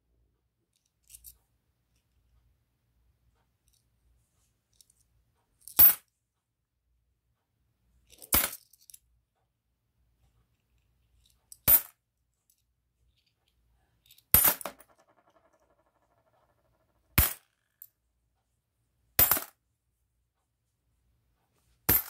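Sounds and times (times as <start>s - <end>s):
coins clinking on surface: 14.2s - 17.9s, 19.2s - 19.5s
coin rattling: 14.4s - 17.9s.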